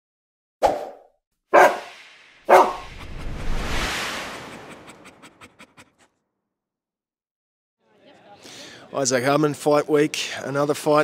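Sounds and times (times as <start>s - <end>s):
sharp dog barks: 1.5s - 1.9s, 2.5s - 2.8s
rushing whoosh: 1.6s - 6.0s.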